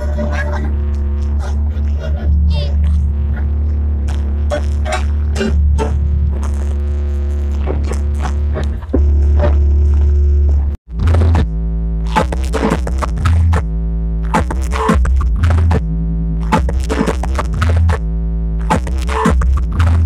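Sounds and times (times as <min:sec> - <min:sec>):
heavy low bass: 0:00.0 - 0:20.0
music over speakers: 0:00.0 - 0:20.0.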